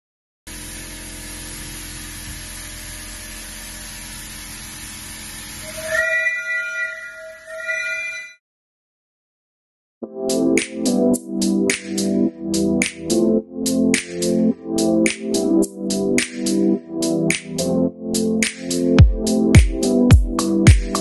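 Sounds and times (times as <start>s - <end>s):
steam whistle blasts: 5.6s - 8.4s.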